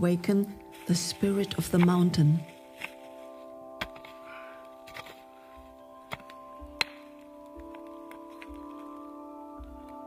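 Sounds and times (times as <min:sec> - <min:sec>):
background music of held notes: 0:00.0 - 0:10.0
hand pick striking stony soil: 0:00.8 - 0:03.1, 0:03.8 - 0:04.2, 0:04.8 - 0:05.2, 0:06.0 - 0:08.8.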